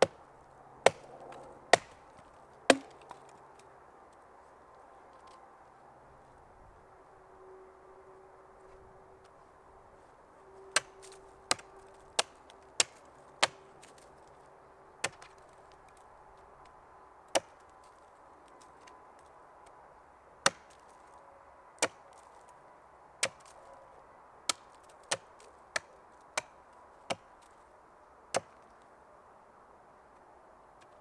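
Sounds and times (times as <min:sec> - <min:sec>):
hatchet chopping wood: 0:00.0 - 0:00.2, 0:00.8 - 0:03.3, 0:10.8 - 0:14.0, 0:15.0 - 0:15.4, 0:17.3 - 0:17.6, 0:20.4 - 0:20.8, 0:21.8 - 0:22.0, 0:23.2 - 0:23.5, 0:24.5 - 0:27.4, 0:28.3 - 0:28.6.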